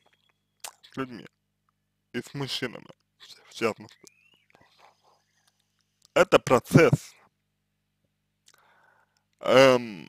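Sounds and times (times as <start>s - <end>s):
mouth clicks: 0.1s - 1.0s
faint breath: 8.5s - 9.2s.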